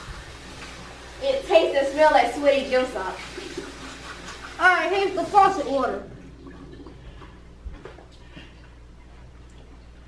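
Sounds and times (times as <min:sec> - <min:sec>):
steady low hum: 0:05.7 - 0:10.0.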